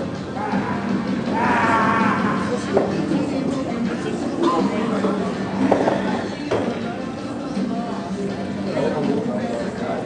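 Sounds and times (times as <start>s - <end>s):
murmur of a hall: 0.0s - 10.0s.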